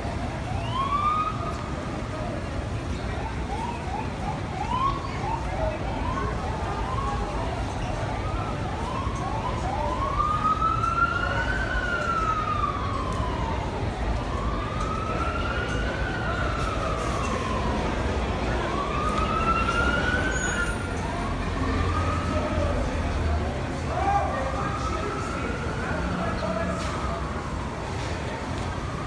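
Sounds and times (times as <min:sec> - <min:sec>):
emergency vehicle siren wailing: 0:00.0 - 0:29.0.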